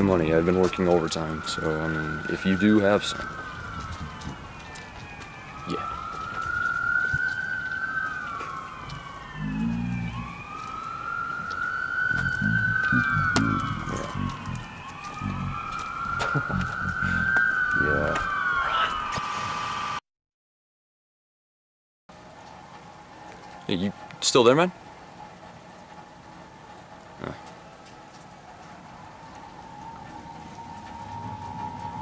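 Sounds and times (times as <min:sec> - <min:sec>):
emergency vehicle siren wailing: 0:00.0 - 0:20.0, 0:22.1 - 0:32.0.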